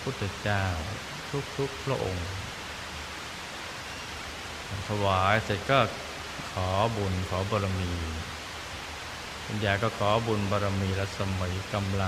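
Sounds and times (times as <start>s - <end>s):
man speaking: 0.0s - 2.5s, 4.7s - 8.3s, 9.5s - 12.0s
background hiss: 0.0s - 12.0s.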